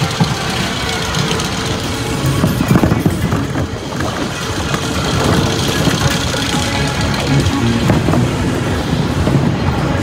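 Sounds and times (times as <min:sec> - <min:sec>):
roller coaster wheels rumbling: 0:00.0 - 0:10.0
music playing: 0:00.1 - 0:10.0.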